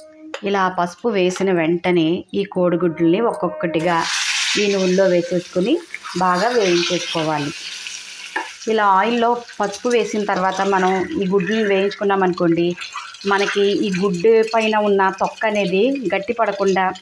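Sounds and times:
woman talking: 0.3s - 7.6s, 8.7s - 17.0s
hot oil sizzling: 3.8s - 17.0s.

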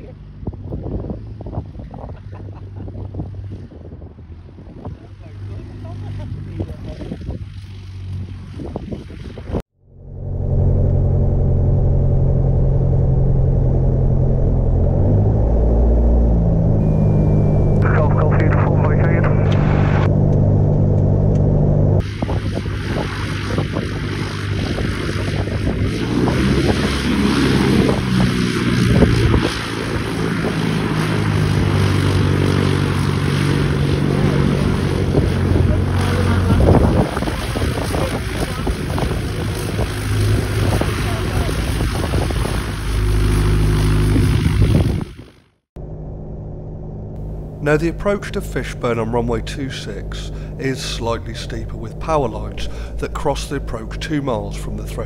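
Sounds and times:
aircraft engine and propeller drone: 0.0s - 55.0s
aircraft taxiing outside: 0.0s - 55.0s.

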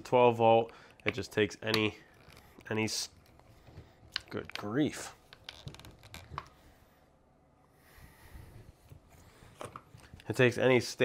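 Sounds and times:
plastic clicks and scraping: 0.6s - 6.6s.

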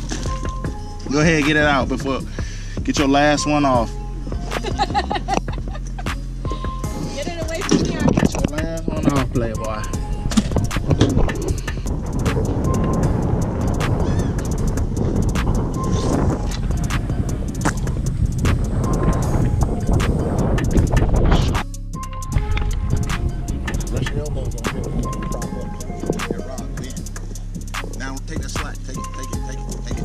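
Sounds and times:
background music with steady beat: 0.0s - 30.0s.

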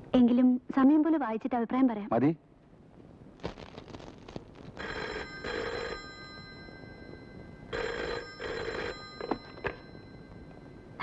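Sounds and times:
landline telephone ringing: 4.8s - 11.0s.

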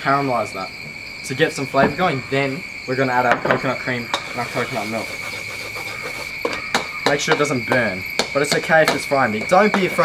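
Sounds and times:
high-pitched insect trill: 0.0s - 10.0s
paste sizzling in oil: 4.0s - 6.6s
wooden spatula knocking wok: 6.4s - 10.0s.

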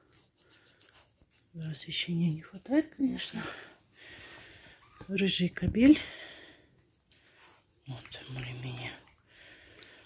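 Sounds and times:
woman speaking: 1.6s - 3.8s, 5.0s - 6.4s, 7.8s - 9.1s.

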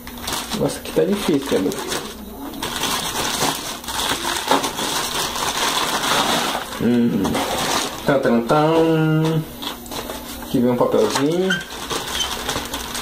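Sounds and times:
plastic crinkling and rustling: 0.0s - 13.0s
scissors cutting plastic: 0.1s - 10.1s, 11.0s - 13.0s.

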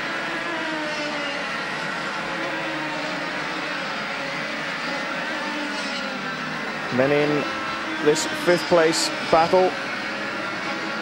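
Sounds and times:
kart engines racing past: 0.0s - 11.0s.

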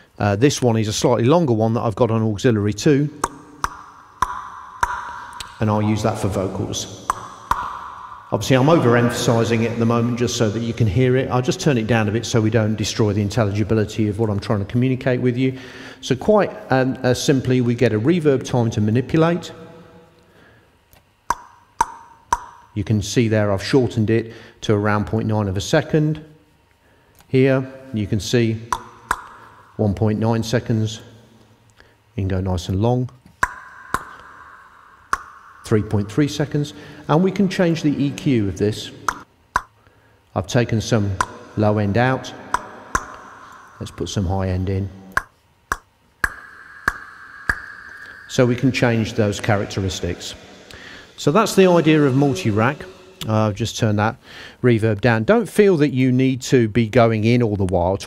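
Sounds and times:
voice reverb tail: 2.7s - 20.2s, 27.4s - 31.3s, 33.4s - 39.3s, 40.4s - 45.2s, 46.5s - 53.8s
steady ringing tone: 2.9s - 15.5s, 28.3s - 30.0s, 33.4s - 39.3s, 40.7s - 45.1s, 46.1s - 53.5s
sharp taps: 3.2s - 5.6s, 7.0s - 8.3s, 21.3s - 22.8s, 28.7s - 29.6s, 33.3s - 35.7s, 42.5s - 43.8s, 45.1s - 48.2s.

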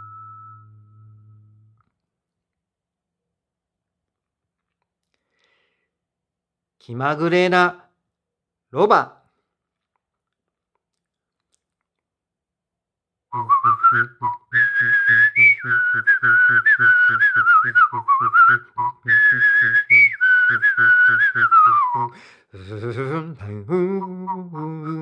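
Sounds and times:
person whistling a melody: 0.0s - 1.8s, 13.3s - 25.0s.

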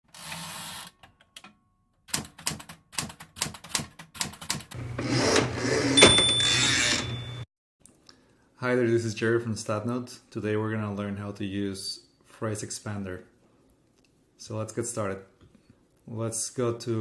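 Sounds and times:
typewriter bell ringing: 6.0s - 7.4s.

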